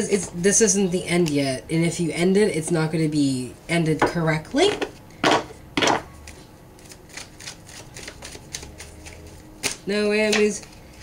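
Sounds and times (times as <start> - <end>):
cards shuffled by hand: 6.2 - 11.0.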